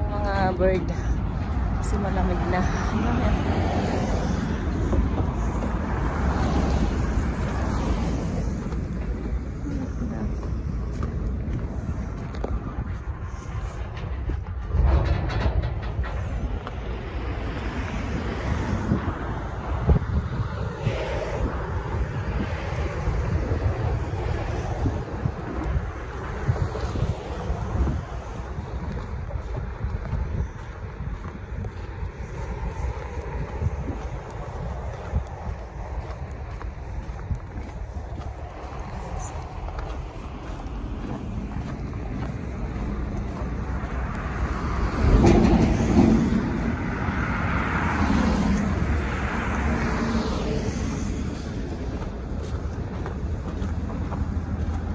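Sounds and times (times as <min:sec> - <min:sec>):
road traffic: 0:00.0 - 0:54.9
vehicle passing close: 0:00.0 - 0:54.9
wind rumbling over microphone: 0:00.0 - 0:54.9.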